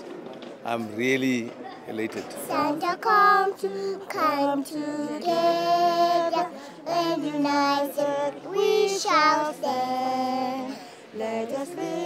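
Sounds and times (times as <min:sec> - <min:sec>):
child singing: 0:02.4 - 0:12.0
woman singing unaccompanied: 0:02.4 - 0:12.0.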